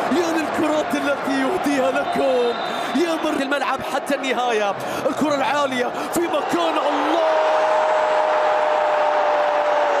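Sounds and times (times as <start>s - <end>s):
stadium crowd cheering: 0.0s - 10.0s.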